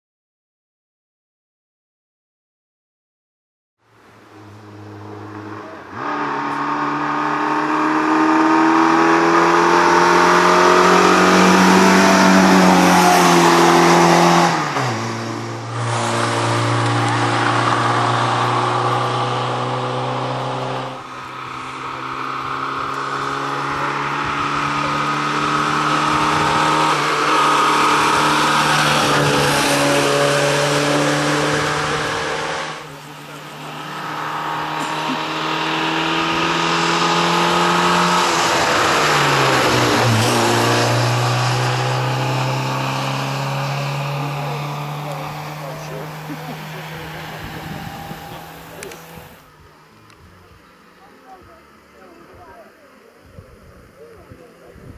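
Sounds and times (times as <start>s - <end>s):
rally car engine revving: 4.2s - 52.4s.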